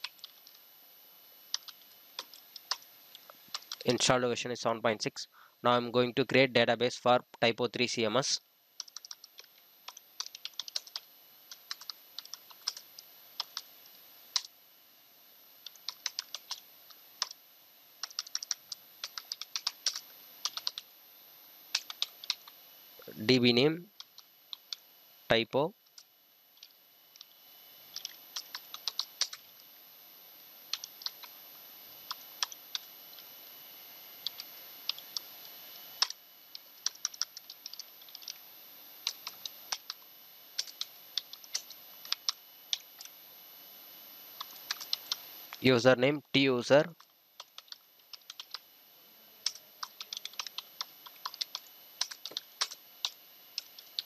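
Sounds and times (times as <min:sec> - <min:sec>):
computer keyboard typing: 0:00.0 - 0:00.6, 0:01.5 - 0:02.9, 0:03.5 - 0:04.0, 0:08.8 - 0:13.7, 0:14.3 - 0:14.5, 0:15.6 - 0:17.4, 0:18.0 - 0:20.9, 0:21.7 - 0:22.5, 0:24.0 - 0:24.8, 0:25.9 - 0:29.5, 0:30.7 - 0:31.4, 0:32.1 - 0:32.9, 0:34.2 - 0:35.3, 0:36.0 - 0:38.4, 0:39.0 - 0:40.0, 0:40.6 - 0:43.1, 0:44.4 - 0:45.2, 0:46.9 - 0:48.7, 0:49.4 - 0:54.0.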